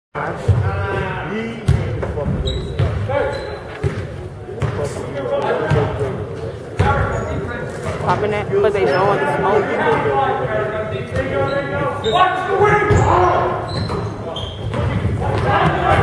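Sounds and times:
voices calling out: 8.1s - 10.0s.

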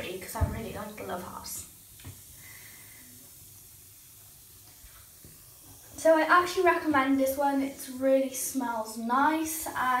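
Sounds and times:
water hissing in bathtub: 0.0s - 10.0s.

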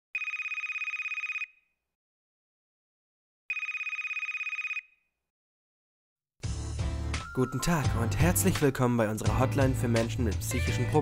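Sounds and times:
telephone ringing: 0.2s - 1.6s, 3.5s - 5.0s.

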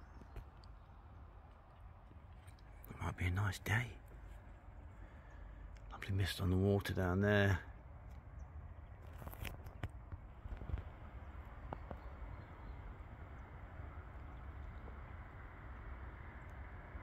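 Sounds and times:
low steady rumble: 0.0s - 17.0s.

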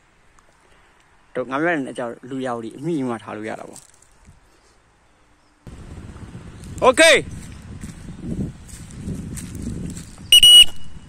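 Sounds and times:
footsteps on dirt track: 5.7s - 10.7s
high-pitched whistle blast: 10.3s - 11.0s.

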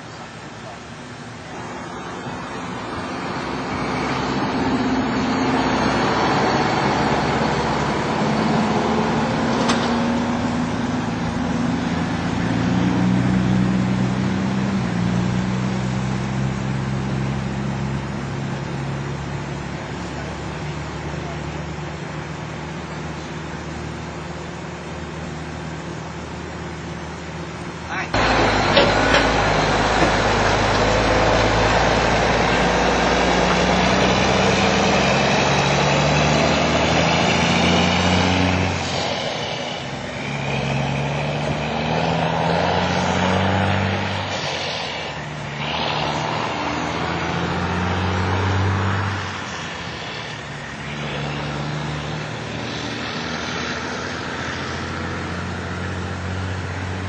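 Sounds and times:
vehicle rumble: 0.0s - 57.0s.

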